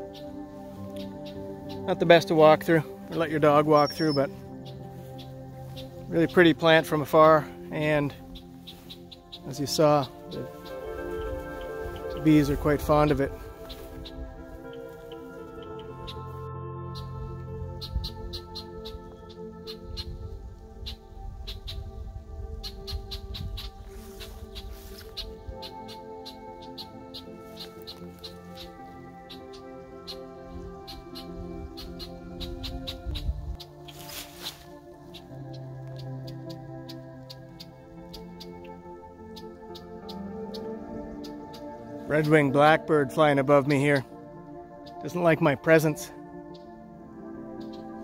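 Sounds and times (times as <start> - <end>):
soft background music: 0.0 - 48.0.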